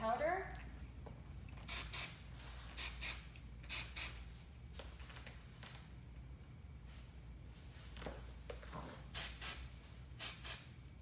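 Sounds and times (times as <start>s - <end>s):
aerosol spray hissing spurts: 1.6s - 2.2s, 2.8s - 4.2s.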